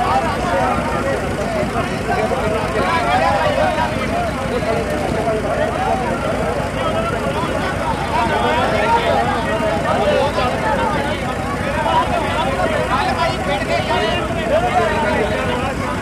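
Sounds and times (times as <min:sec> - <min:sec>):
men talking babble: 0:00.0 - 0:16.0.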